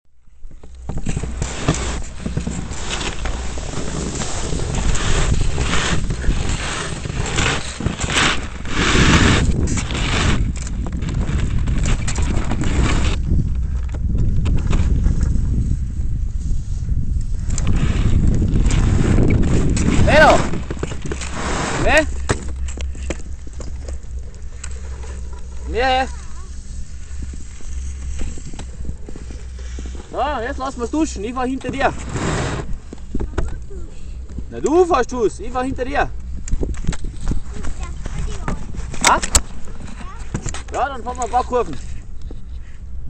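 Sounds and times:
wind rumbling on microphone: 0.2s - 43.0s
skis scraping over snow: 0.6s - 42.6s.

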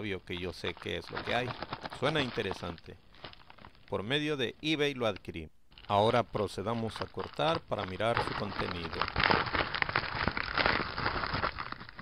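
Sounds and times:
plastic mailer crinkling: 0.0s - 4.2s, 5.0s - 12.0s.

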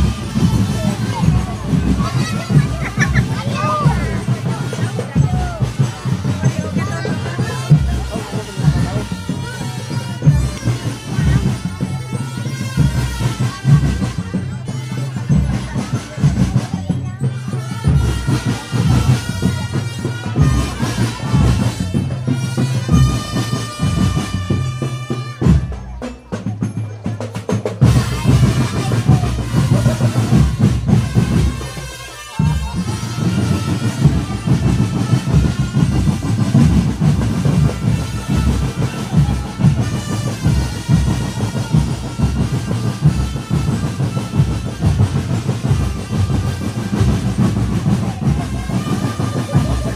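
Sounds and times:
marching drums beating: 0.0s - 49.9s.

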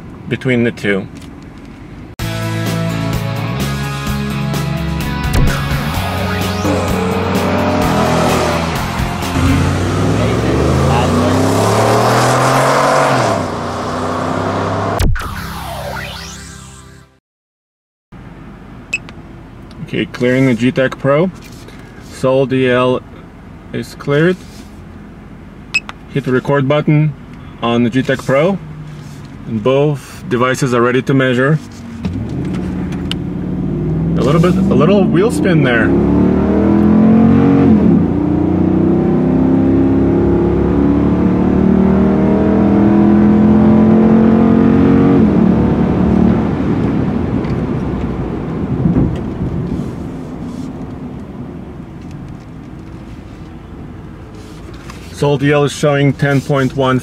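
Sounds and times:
truck cab hum: 0.0s - 16.6s, 18.2s - 57.0s
music: 2.2s - 9.8s
engine accelerating: 3.1s - 17.2s, 32.0s - 50.7s.

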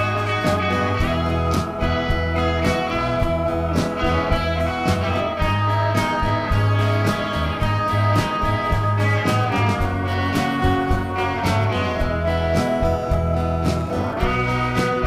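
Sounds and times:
bass line: 0.0s - 15.0s
live rock band playing: 0.0s - 15.0s
picked electric guitar: 0.0s - 15.0s.

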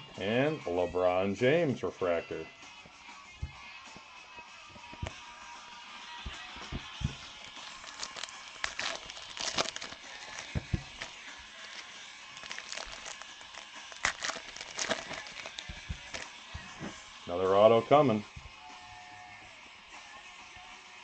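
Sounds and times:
foil wrappers crinkling and tearing: 6.6s - 16.9s.

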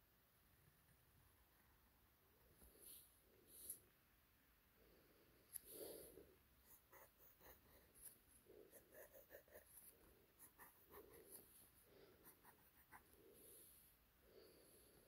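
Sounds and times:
pen nib scratching on paper: 6.6s - 13.2s.

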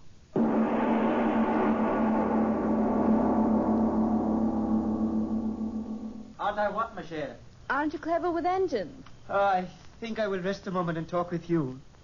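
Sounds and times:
gong ringing: 0.4s - 6.4s.

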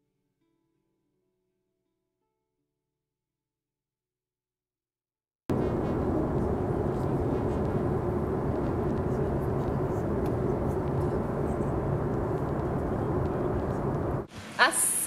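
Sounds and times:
airliner cabin roar: 5.5s - 14.4s.

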